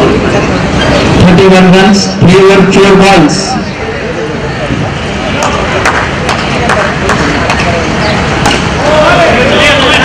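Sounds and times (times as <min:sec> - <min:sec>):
loud noisy background: 0:00.0 - 0:10.0
voices of players and spectators: 0:00.0 - 0:10.0.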